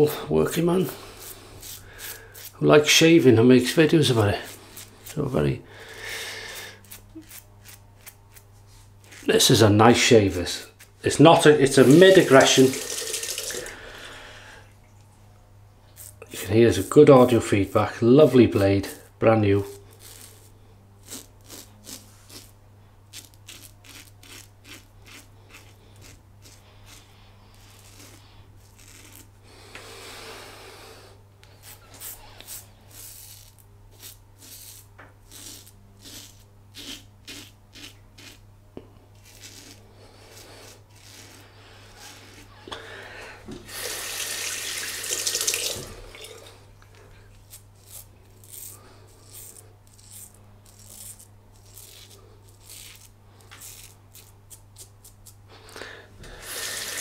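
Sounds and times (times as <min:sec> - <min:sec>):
razor rasping through stubble: 0:00.0 - 0:13.9, 0:16.0 - 0:29.8, 0:31.4 - 0:38.4, 0:39.1 - 0:45.6, 0:47.3 - 0:57.0.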